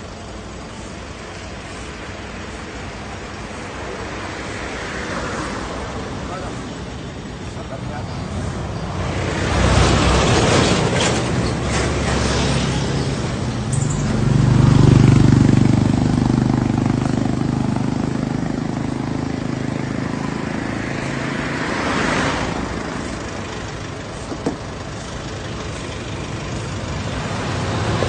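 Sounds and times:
road traffic noise: 0.0s - 28.0s
vehicle engine drone: 0.0s - 28.0s.

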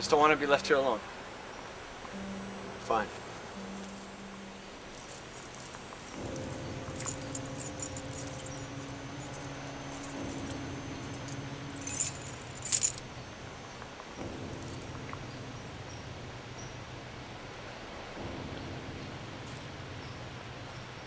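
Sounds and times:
low steady tone: 0.6s - 21.0s
keys jangling: 4.8s - 13.0s.

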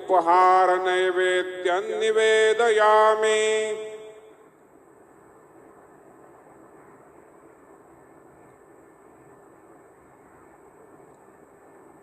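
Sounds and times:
person chanting: 0.0s - 4.2s
faint background hiss: 0.0s - 12.0s.

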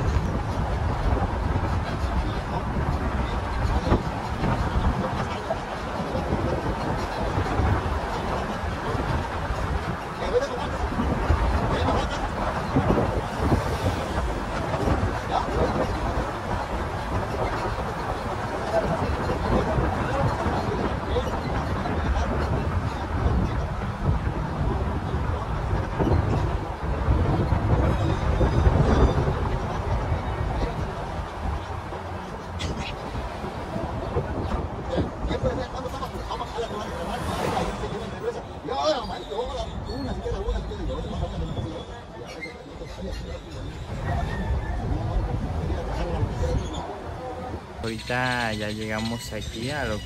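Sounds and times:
vehicle engine and road noise: 0.0s - 50.0s.

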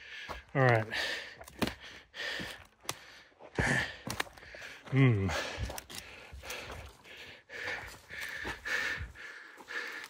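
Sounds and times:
person breathing hard: 0.0s - 10.0s.

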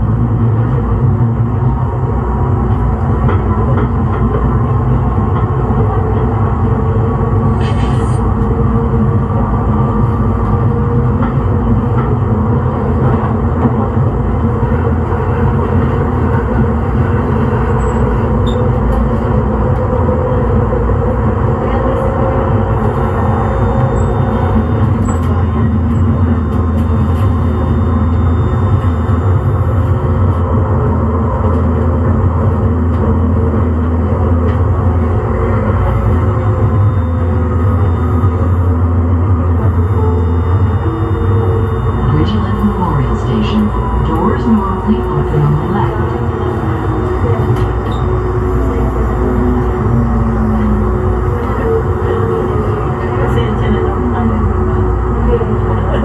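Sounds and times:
train humming loudly: 0.0s - 56.0s
faint steady tones: 8.3s - 56.0s.

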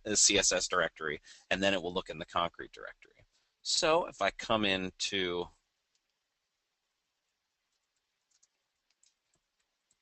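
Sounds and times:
faint room hiss: 0.0s - 10.0s
computer mouse clicks: 7.7s - 10.0s.

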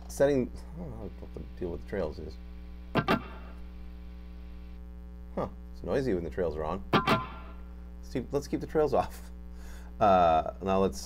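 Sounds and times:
electrical hum and buzz: 0.0s - 11.0s.

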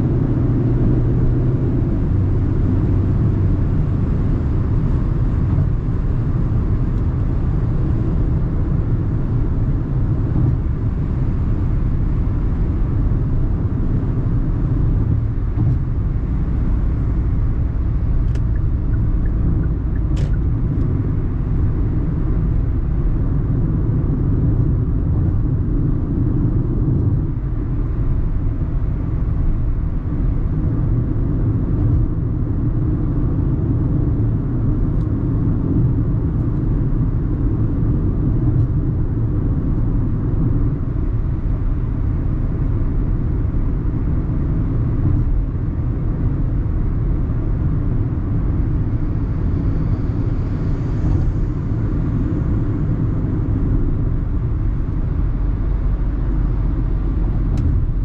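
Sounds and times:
car engine: 0.0s - 58.0s
road and tyre rumble: 0.0s - 58.0s.

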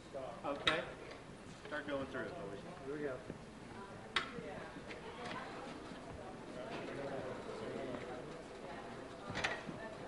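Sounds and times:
faint voices: 1.8s - 10.0s.

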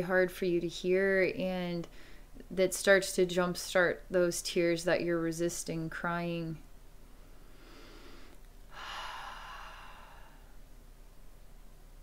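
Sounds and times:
woman breathing: 1.9s - 2.4s, 7.2s - 10.6s.

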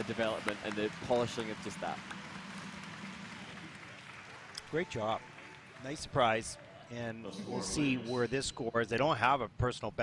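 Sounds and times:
faint applause: 0.0s - 7.0s
crowd noise: 0.0s - 8.4s.

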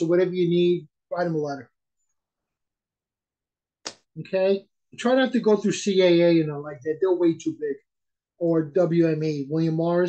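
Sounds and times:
person speaking: 3.9s - 10.0s.

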